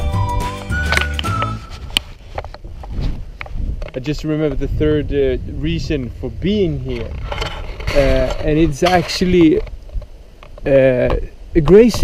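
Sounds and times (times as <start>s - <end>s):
alarm melody: 0.0s - 1.8s.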